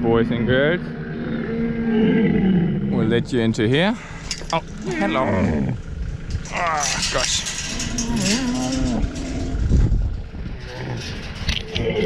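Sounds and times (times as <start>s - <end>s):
camel calling: 4.0s - 12.0s.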